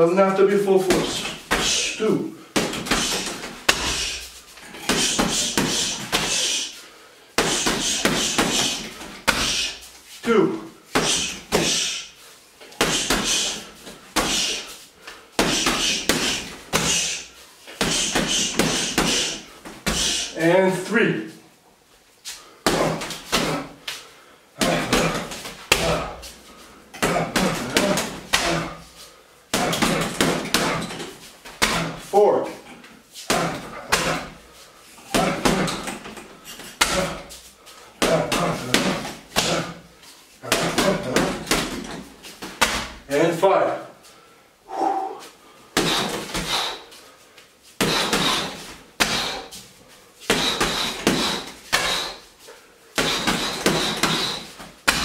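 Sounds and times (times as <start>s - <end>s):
punches and kicks hitting heavy bag: 0.8s - 1.9s, 2.6s - 4.2s, 4.8s - 6.5s, 7.4s - 9.8s, 10.9s - 11.9s, 12.8s - 14.7s, 15.4s - 17.2s, 17.8s - 20.3s, 22.6s - 23.8s, 24.6s - 26.3s, 27.0s - 28.8s, 29.5s - 32.0s, 33.3s - 34.4s, 35.0s - 36.1s, 36.7s - 37.3s, 38.0s - 39.8s, 40.4s - 43.0s, 45.8s - 46.8s, 47.8s - 49.6s, 50.3s - 52.2s, 53.0s - 55.0s.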